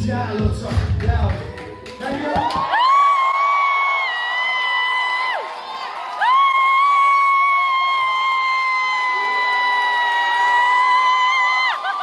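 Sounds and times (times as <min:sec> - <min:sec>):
crowd cheering: 0:01.2 - 0:12.0.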